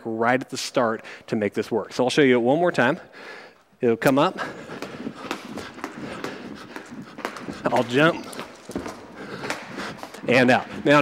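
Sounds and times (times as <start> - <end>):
feet landing: 4.0 - 11.0
jump ropes slapping floor: 4.0 - 11.0.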